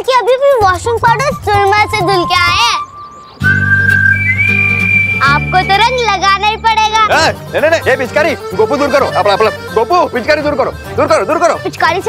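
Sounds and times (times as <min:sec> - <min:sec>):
long high whistle-like note: 0:02.8 - 0:05.9.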